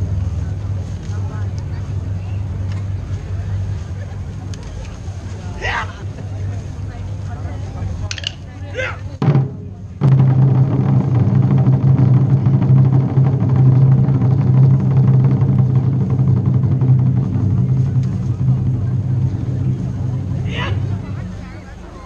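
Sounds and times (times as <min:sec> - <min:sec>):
taiko drums rolling: 0:00.0 - 0:07.0, 0:07.8 - 0:22.0.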